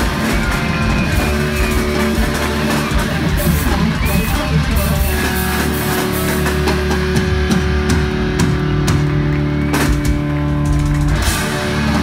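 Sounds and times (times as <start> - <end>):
distorted electric guitars: 0.0 - 12.0
drum and cymbal hits: 0.0 - 12.0.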